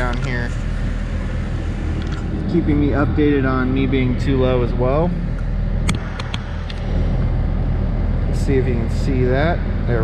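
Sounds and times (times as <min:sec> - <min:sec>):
excavator engine humming: 0:00.0 - 0:10.0.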